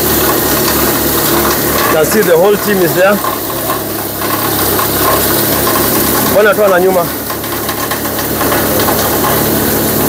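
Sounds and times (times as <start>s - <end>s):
chaff cutter chopping stalks: 0.0s - 10.0s
motor humming: 0.0s - 10.0s.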